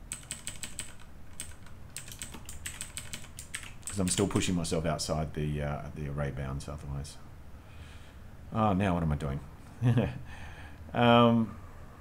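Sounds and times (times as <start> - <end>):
computer keyboard typing: 0.0 - 4.4.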